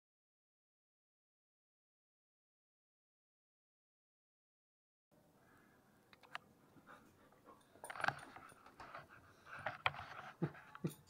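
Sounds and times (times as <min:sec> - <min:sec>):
puppies moving about: 0:06.8 - 0:11.0.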